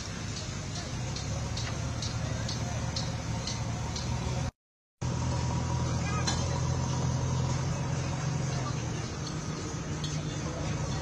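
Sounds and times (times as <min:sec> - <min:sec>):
faint distant voices: 0:00.0 - 0:04.4, 0:05.4 - 0:11.0
engine running hum: 0:00.0 - 0:11.0.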